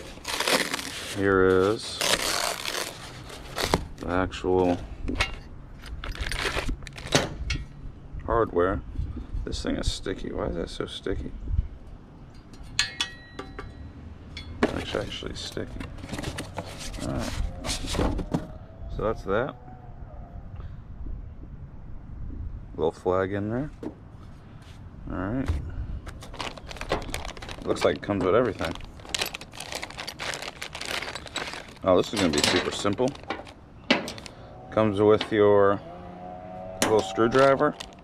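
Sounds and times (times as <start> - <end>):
plastic bags crinkling: 0.0 - 4.1, 6.0 - 7.2, 26.1 - 34.4, 37.2 - 38.0.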